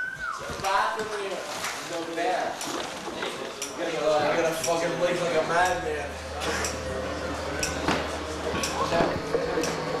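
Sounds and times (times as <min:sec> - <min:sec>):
indistinct voices talking: 0:04.4 - 0:10.0.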